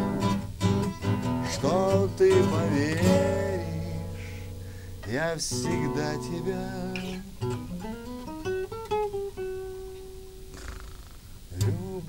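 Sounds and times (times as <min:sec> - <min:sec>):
classical guitar notes: 0:00.0 - 0:10.5, 0:11.5 - 0:12.0
guitar chord strummed: 0:00.0 - 0:10.5.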